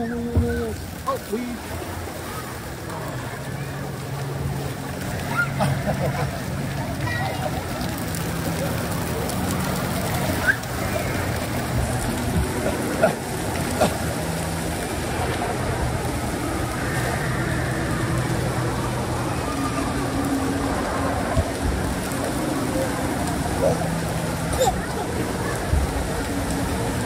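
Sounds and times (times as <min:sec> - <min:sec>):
running water: 0:00.0 - 0:27.0.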